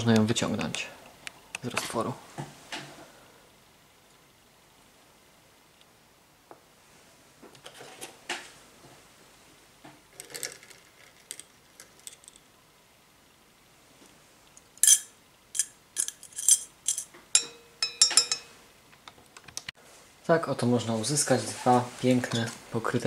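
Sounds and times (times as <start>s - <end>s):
metal tweezers clinking on glass: 14.8s - 18.6s.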